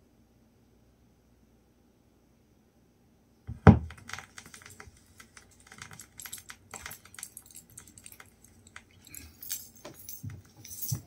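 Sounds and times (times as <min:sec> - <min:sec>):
stylus thump on record: 0:03.5 - 0:04.1
vinyl record crackles: 0:03.5 - 0:09.0.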